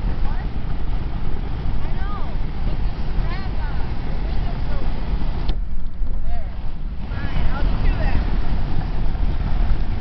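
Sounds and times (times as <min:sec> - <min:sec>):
road and wind noise in car: 0:00.0 - 0:10.0.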